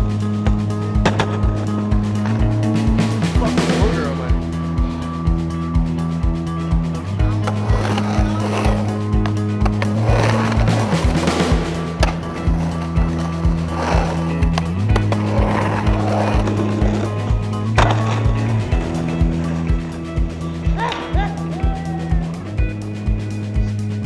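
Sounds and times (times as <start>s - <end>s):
backing music with beat and bass: 0.0s - 24.0s
skateboard clack: 0.3s - 3.2s, 7.3s - 22.2s
skateboard wheels rushing on concrete: 0.3s - 4.4s, 6.6s - 22.7s.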